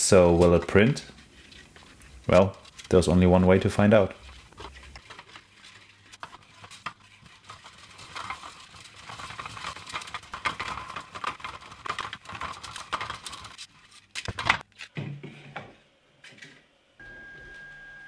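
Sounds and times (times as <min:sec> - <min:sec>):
filament spool clicking and scraping: 0:04.1 - 0:13.6.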